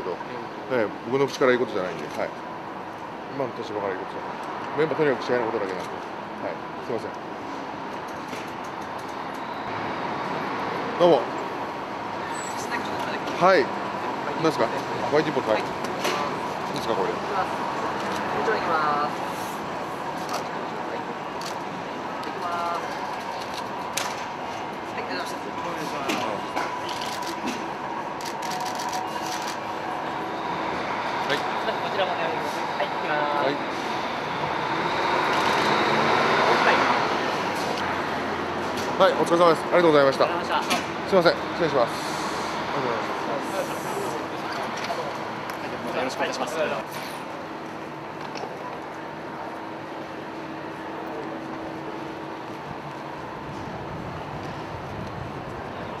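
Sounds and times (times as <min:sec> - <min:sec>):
murmur of distant voices: 0:10.6 - 0:56.0.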